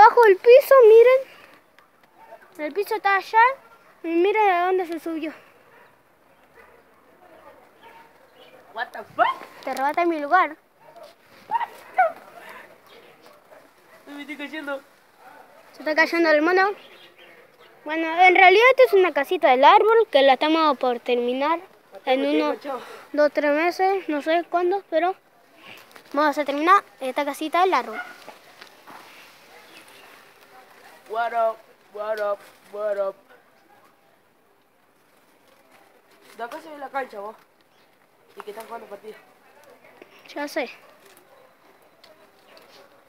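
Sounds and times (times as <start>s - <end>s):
short sharp yelps: 9.2s - 9.6s, 10.9s - 12.6s.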